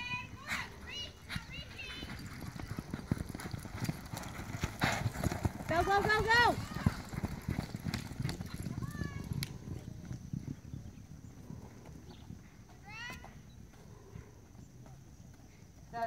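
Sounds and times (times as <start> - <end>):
horse hoofbeats on dirt: 0.0 - 16.0.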